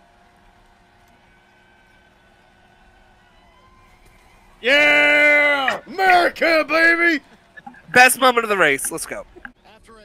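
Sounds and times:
distant voices: 3.9 - 9.6.

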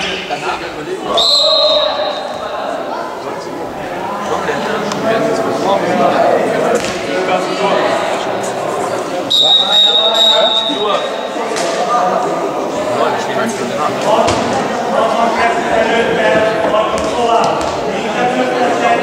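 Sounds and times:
voices echoing in sports hall: 0.0 - 19.0
referee's whistle blast: 1.1 - 2.2, 9.3 - 11.2.

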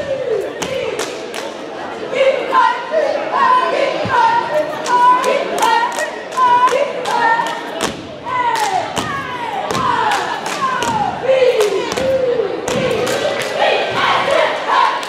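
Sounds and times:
cheerleaders chanting in unison: 0.0 - 15.0.

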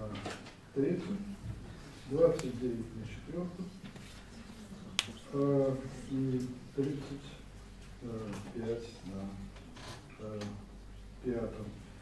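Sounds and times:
man speaking: 0.8 - 1.4, 2.0 - 3.8, 5.2 - 9.6, 10.2 - 12.0.

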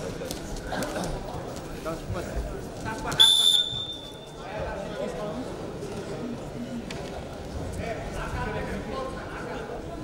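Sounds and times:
referee's whistle blast: 3.2 - 4.3.

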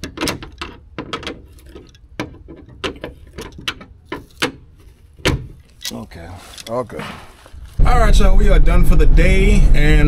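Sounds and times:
sharp clicks and knocks: 0.0 - 6.8
low rumble: 7.6 - 10.0.

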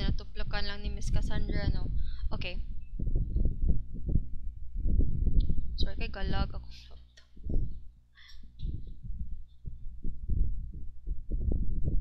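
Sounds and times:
low muffled thumps: 1.1 - 6.4, 7.4 - 7.9, 8.5 - 12.0.

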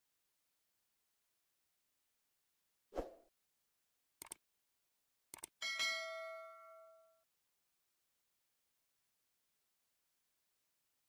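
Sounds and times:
bell-like notification ding: 5.6 - 7.2.

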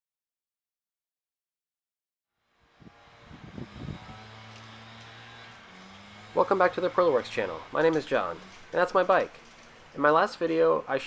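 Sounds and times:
mini bike motor running: 2.5 - 11.0.

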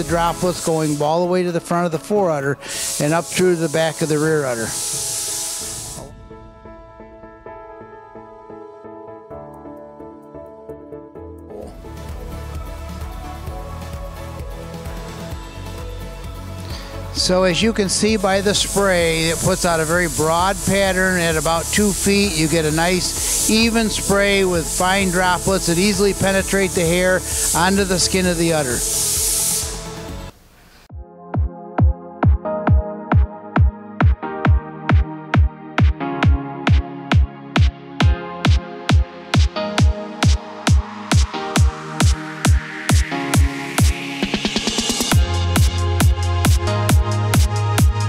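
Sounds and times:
spray gun hissing: 0.0 - 1.1, 2.6 - 6.2, 17.9 - 30.9
soft background music: 0.0 - 44.2.

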